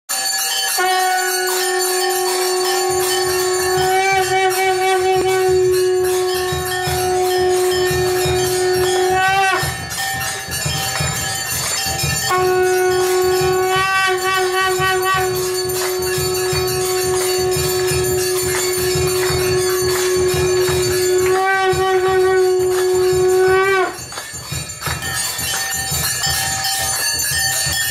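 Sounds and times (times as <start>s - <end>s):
brass bells ringing: 0.1s - 27.9s
held horn-like tone: 0.7s - 24.2s
quick steady drum beat: 2.8s - 27.9s.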